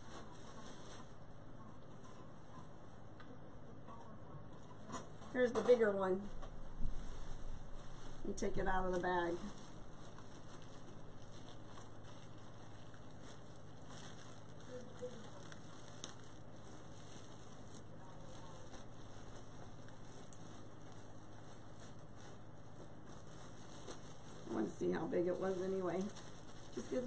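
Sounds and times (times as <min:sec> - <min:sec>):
plastic bag crinkling: 0:06.8 - 0:27.0.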